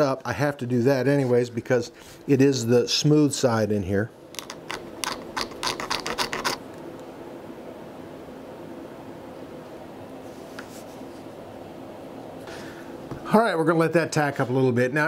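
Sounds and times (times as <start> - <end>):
steady low hum: 0.0 - 15.0
tool scratching leather: 4.4 - 6.6.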